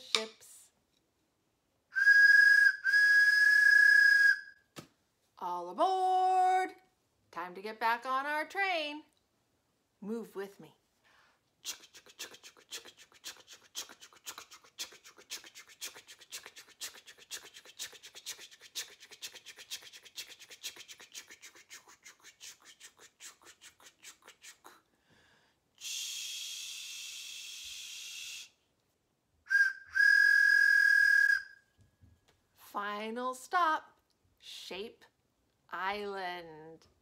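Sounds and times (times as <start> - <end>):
train whistle toots: 2.0 - 4.4, 29.5 - 31.5.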